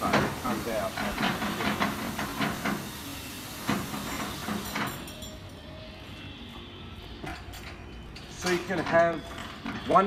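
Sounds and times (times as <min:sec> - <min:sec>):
steam cleaner hissing: 0:00.0 - 0:04.8.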